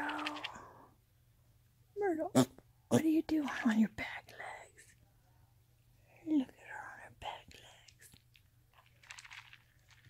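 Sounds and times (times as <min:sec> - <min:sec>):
person whispering: 0:00.0 - 0:00.9, 0:02.9 - 0:05.0, 0:06.0 - 0:08.1.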